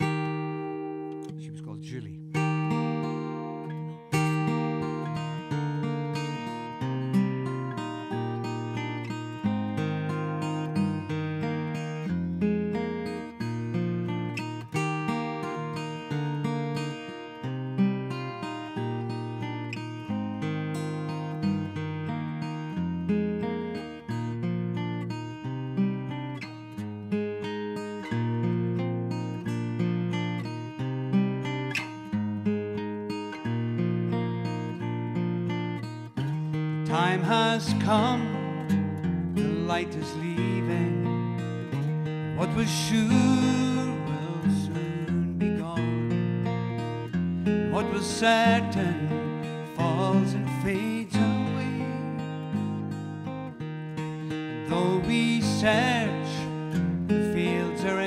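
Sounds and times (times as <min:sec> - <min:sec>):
acoustic guitar picking: 0:00.0 - 0:58.0.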